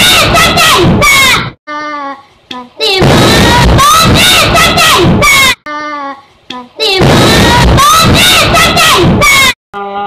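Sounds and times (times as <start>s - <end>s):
child singing: 0.0s - 1.1s, 1.7s - 9.6s
children's startled voices: 0.0s - 1.5s, 2.8s - 5.6s, 6.8s - 9.6s
loud thunderclap: 3.0s - 5.3s, 7.0s - 9.3s.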